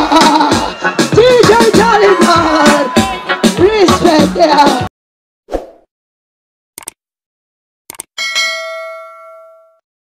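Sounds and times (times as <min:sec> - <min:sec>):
bright bell ding: 0:08.2 - 0:09.8.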